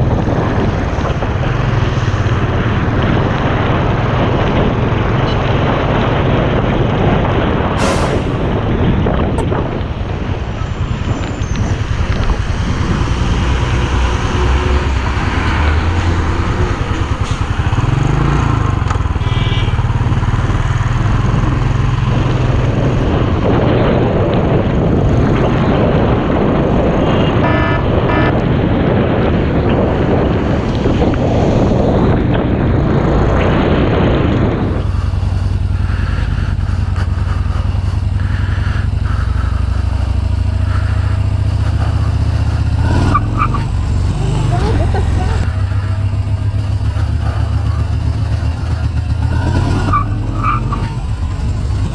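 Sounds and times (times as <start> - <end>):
motorcycle engine running: 0.0 - 7.7, 11.7 - 51.9
tyres on wet road: 0.0 - 51.9
wind noise: 0.0 - 51.9
short horn beeps: 19.2 - 19.8, 27.4 - 28.3.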